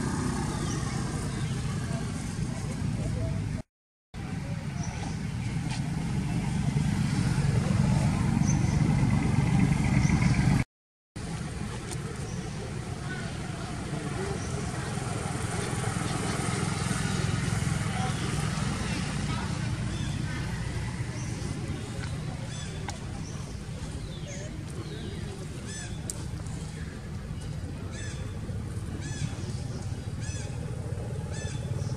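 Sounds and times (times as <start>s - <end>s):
people's voices: 0.0s - 3.6s, 11.4s - 30.9s.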